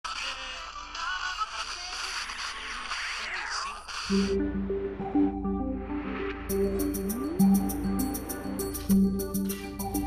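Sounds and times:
radio static: 0:00.0 - 0:04.4
voices through radio static: 0:00.0 - 0:04.4
music through radio static: 0:00.0 - 0:10.0.

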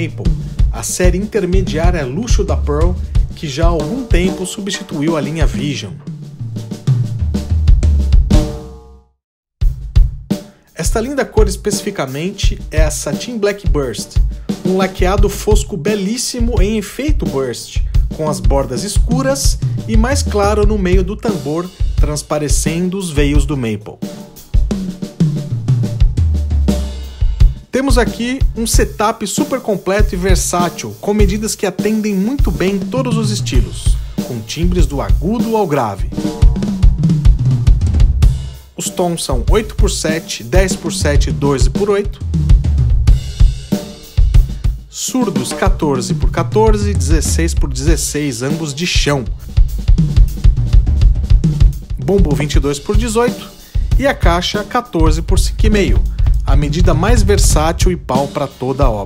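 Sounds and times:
snare drum: 0:00.0 - 0:08.8, 0:09.6 - 0:59.0
drum hits stepping down in pitch: 0:00.0 - 0:08.9, 0:09.6 - 0:11.7, 0:16.4 - 0:29.1, 0:32.3 - 0:48.2, 0:49.1 - 0:59.0
kick drum: 0:09.6 - 0:10.4, 0:36.3 - 0:38.6, 0:42.2 - 0:44.9, 0:49.6 - 0:52.0, 0:55.4 - 0:58.0
cymbal strokes: 0:36.1 - 0:37.7.

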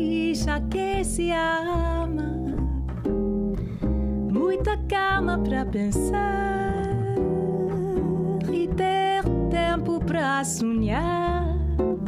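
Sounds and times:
woman singing: 0:00.0 - 0:03.0, 0:04.3 - 0:12.0
double bass walking notes: 0:00.0 - 0:12.0
ukulele chords: 0:00.0 - 0:12.0.

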